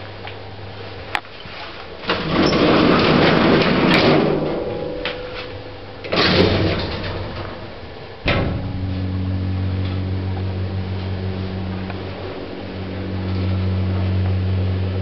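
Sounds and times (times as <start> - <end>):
steady low hum: 0.0 - 15.0
lift gate rattling slide: 2.0 - 9.1
door shutting clunk: 2.1 - 10.1.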